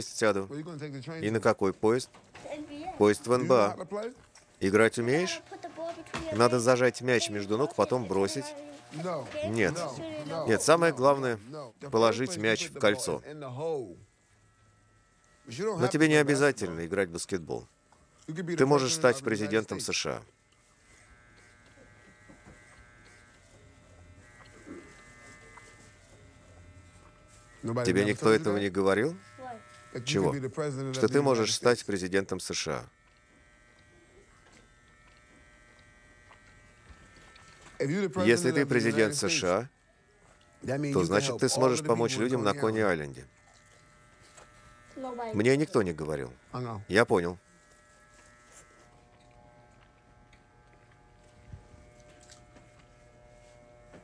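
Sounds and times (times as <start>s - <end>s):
electric hair clippers buzzing: 4.4s - 11.3s, 14.0s - 54.0s.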